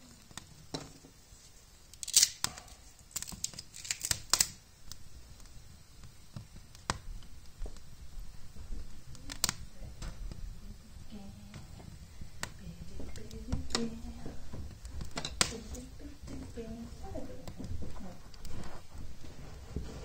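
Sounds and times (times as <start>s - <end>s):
kindling fire crackling: 0.0s - 20.0s.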